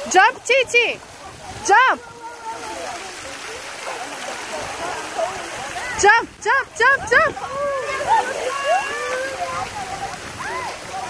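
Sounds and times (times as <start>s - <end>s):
faint children's voices: 0.0s - 11.0s
pool water splashing: 0.0s - 11.0s.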